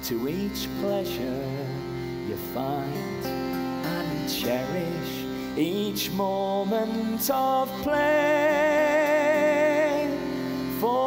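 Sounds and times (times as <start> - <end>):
accompaniment holding chords: 0.0 - 11.0
man singing a mournful ballad: 0.0 - 11.0.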